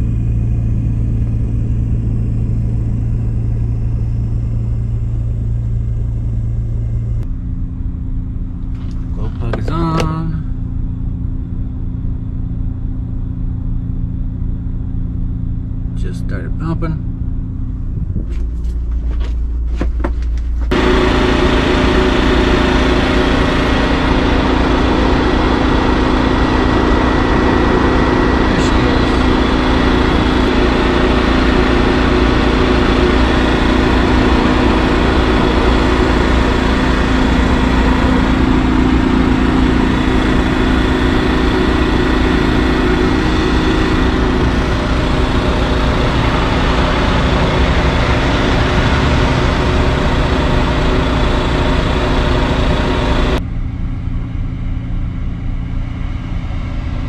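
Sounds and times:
machinery drone: 0:00.0 - 0:57.0.

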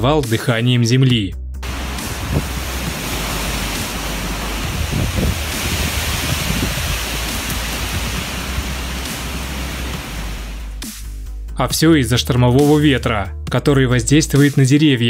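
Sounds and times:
wind buffeting microphone: 0:01.6 - 0:10.7
storm wind through trees: 0:01.6 - 0:10.8.

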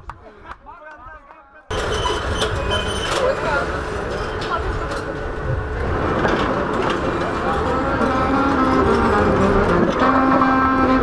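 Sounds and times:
city street rumble: 0:01.7 - 0:11.0
saxophone slow melody: 0:07.6 - 0:11.0.

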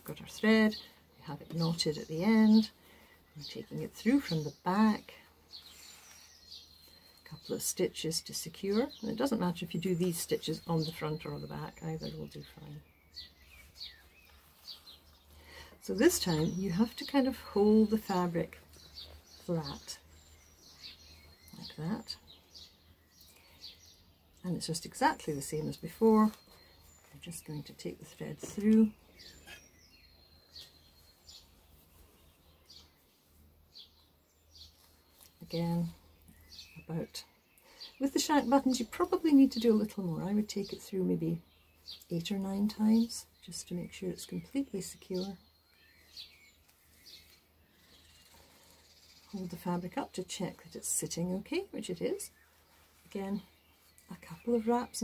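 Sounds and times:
small bird chirping: 0:00.1 - 0:55.0.

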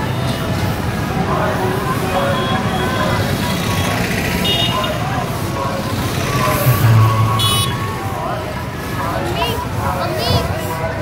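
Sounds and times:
crowd voices: 0:00.0 - 0:11.0
traffic engines: 0:00.0 - 0:11.0
loud engine rumble: 0:05.3 - 0:09.1
brief high tone: 0:06.6 - 0:08.1.

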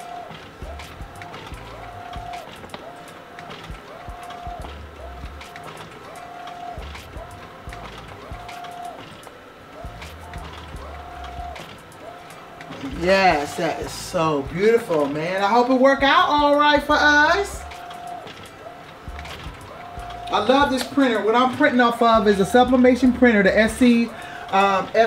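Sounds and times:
printer carriage motor whine: 0:00.0 - 0:25.0
printer paper advance clicks: 0:00.0 - 0:25.0.

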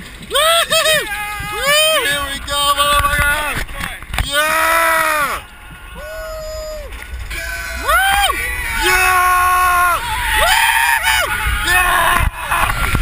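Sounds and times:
roller coaster riders screaming: 0:00.1 - 0:13.0.

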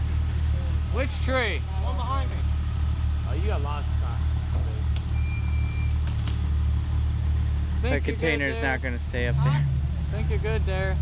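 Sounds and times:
off-road vehicle engine rumbling: 0:00.0 - 0:11.0.

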